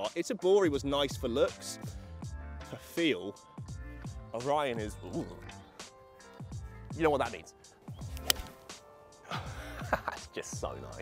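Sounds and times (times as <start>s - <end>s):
background music: 0.0s - 11.0s
golf club striking ball: 8.1s - 8.7s.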